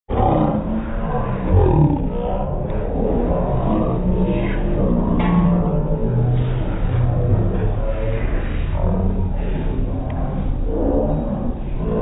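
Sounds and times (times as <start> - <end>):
slowed down man's voice: 1.5 - 2.2.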